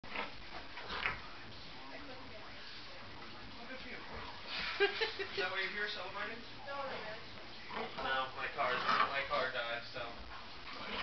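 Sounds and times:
dogs play-fighting: 0.0s - 9.3s, 10.2s - 11.0s.

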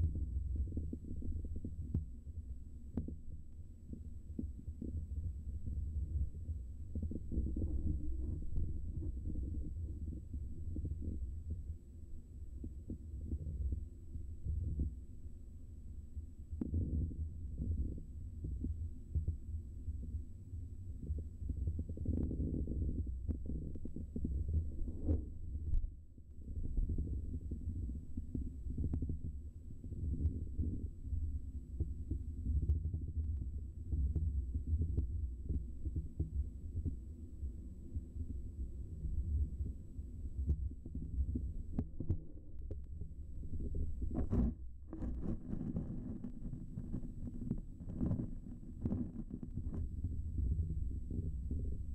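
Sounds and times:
underwater water flowing rumble: 0.0s - 51.9s
faint ticks: 2.9s - 6.3s, 16.6s - 20.1s.

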